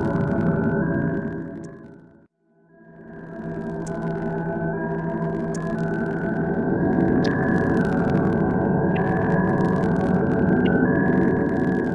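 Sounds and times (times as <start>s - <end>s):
faint static crackle: 0.0s - 2.3s, 3.1s - 11.9s.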